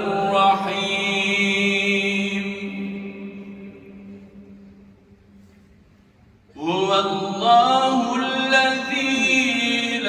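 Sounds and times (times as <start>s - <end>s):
man chanting recitation: 0.0s - 4.5s, 6.6s - 10.0s.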